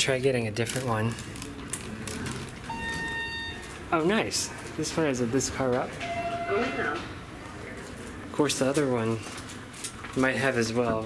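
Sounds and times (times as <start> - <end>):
elevator chime tone: 2.7 - 4.0, 6.0 - 7.3.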